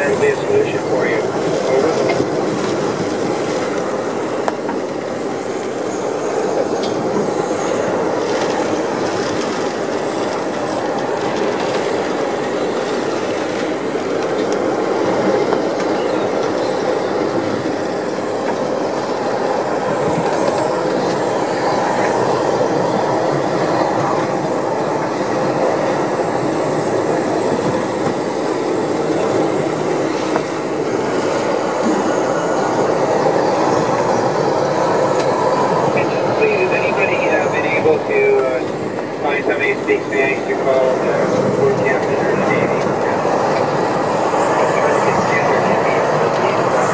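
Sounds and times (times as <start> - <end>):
heavy wind rushing: 0.0 - 46.9.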